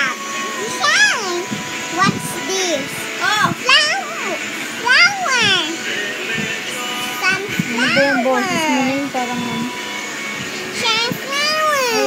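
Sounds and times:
child calling: 0.0 - 1.4, 2.0 - 5.8, 10.8 - 12.0
faint background music: 0.0 - 12.0.

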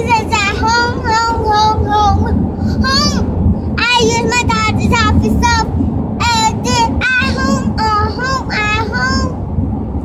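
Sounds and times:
car cabin road noise: 0.0 - 10.0.

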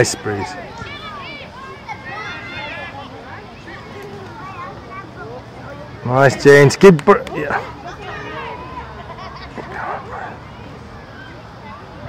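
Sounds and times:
indistinct voices: 7.3 - 12.0.

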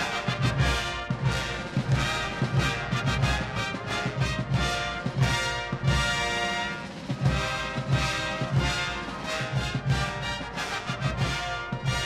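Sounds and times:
military brass band march: 0.0 - 12.0.

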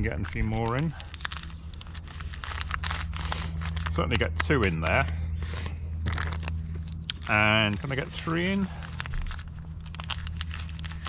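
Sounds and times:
gel sachets crinkling: 0.0 - 11.0.

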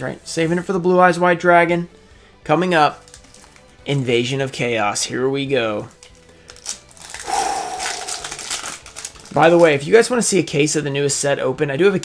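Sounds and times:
foil wrapper crinkling and tearing: 3.0 - 3.7, 6.0 - 9.8.

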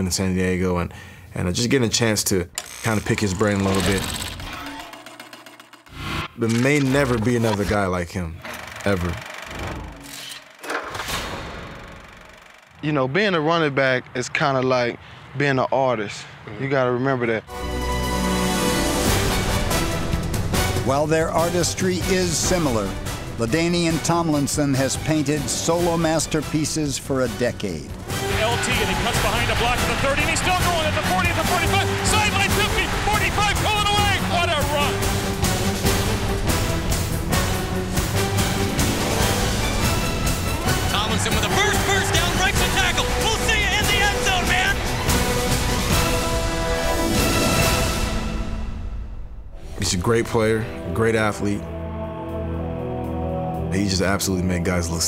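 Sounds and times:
person speaking: 1.4 - 5.0
background music: 17.4 - 55.0
announcer shouting excitedly: 28.3 - 35.0, 41.0 - 44.8.

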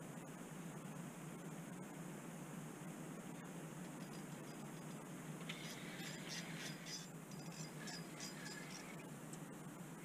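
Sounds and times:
low steady hum: 0.0 - 10.0
fishing reel clicking and whirring: 5.5 - 9.0.

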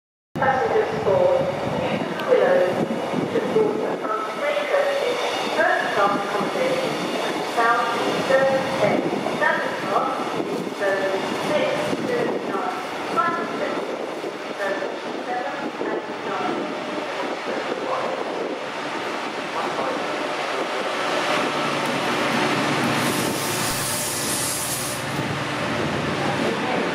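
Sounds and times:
station announcement: 0.4 - 24.2
diesel locomotive engine: 0.4 - 26.9
train coaches clattering over rails: 1.9 - 26.9.

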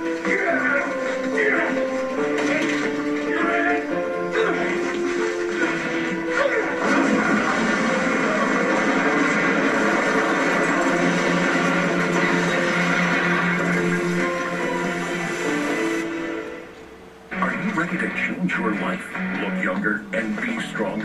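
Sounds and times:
tense dramatic score: 0.0 - 21.0.

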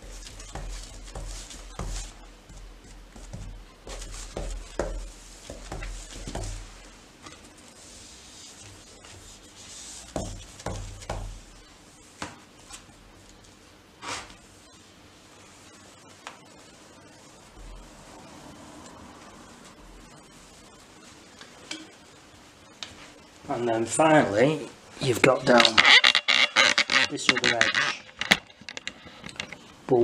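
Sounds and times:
soft knocks and scuffs: 0.0 - 7.6, 8.5 - 13.4
brush strokes on a door: 0.0 - 21.4.

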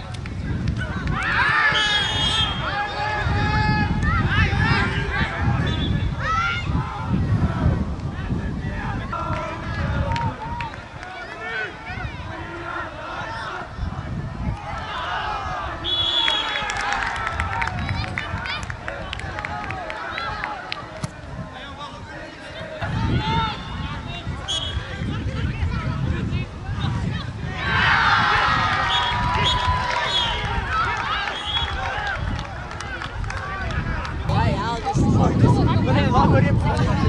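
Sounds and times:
players and spectators calling out: 0.8 - 37.0
referee's whistle blast: 1.7 - 2.8, 15.8 - 16.6, 24.4 - 24.8.

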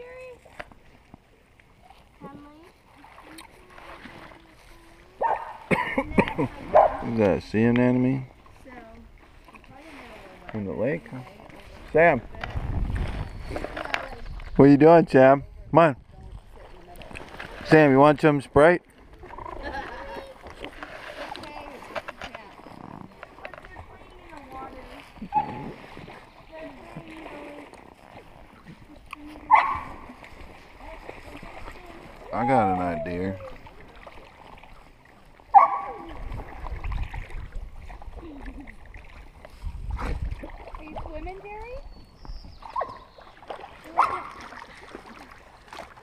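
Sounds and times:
water splashing around kayak: 0.0 - 46.0.

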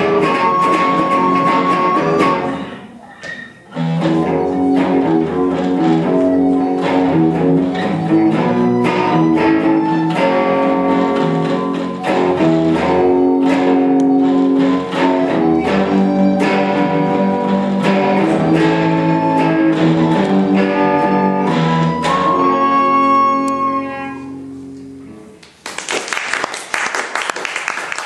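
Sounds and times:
acoustic guitar strummed chords: 0.0 - 3.0, 3.7 - 25.3
electric guitar chords: 0.0 - 3.0, 3.7 - 25.4
wind instrument long melody notes: 0.0 - 3.0, 3.8 - 24.9.

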